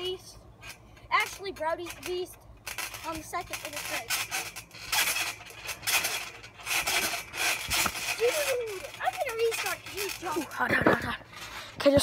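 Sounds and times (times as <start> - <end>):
trampoline mat rasping: 0.0 - 12.0.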